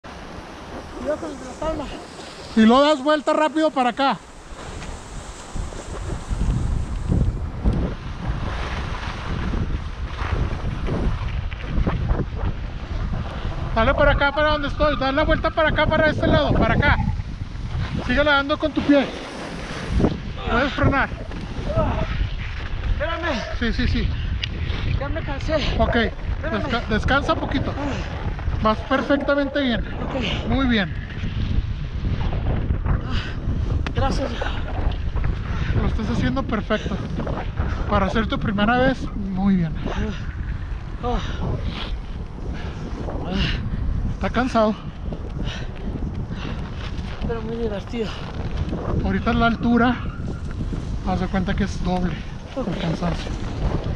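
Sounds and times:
wind rushing over microphone: 0.0 - 53.9
skis scraping over snow: 0.3 - 11.9, 17.7 - 20.3, 50.6 - 53.9.

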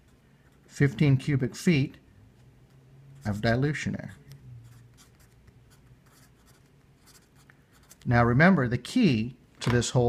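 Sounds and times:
marker scratching on paper: 3.2 - 8.1.

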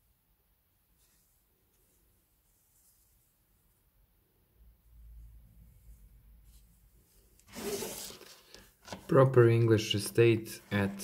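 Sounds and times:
plastic stand scraping on table: 7.5 - 8.5.

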